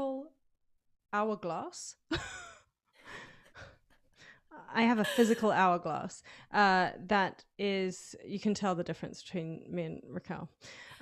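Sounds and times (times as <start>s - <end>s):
women laughing breathily: 5.0s - 5.5s.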